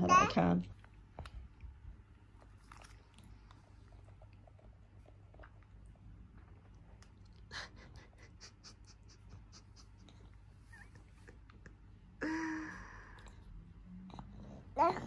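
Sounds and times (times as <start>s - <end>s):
baby babbling: 14.8s - 15.0s.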